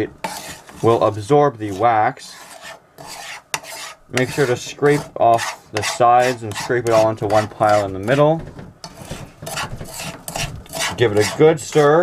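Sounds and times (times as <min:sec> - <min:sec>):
metal utensil scraping a frying pan: 0:00.0 - 0:12.0.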